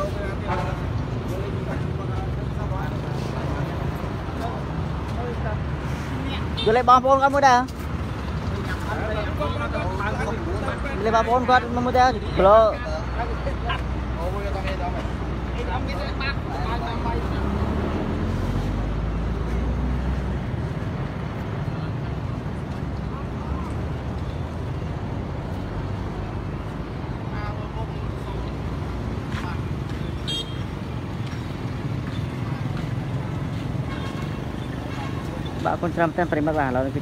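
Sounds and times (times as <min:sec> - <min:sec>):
crowd chatter: 0:00.0 - 0:06.7, 0:07.3 - 0:37.0
roadside traffic noise: 0:00.0 - 0:37.0.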